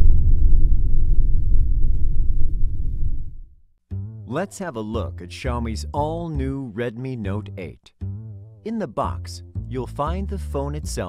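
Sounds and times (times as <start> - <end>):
deep loud rumbling: 0.0 - 3.6.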